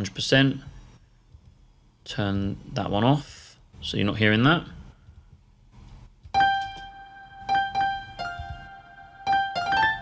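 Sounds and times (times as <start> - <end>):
electric piano notes: 6.4 - 10.0.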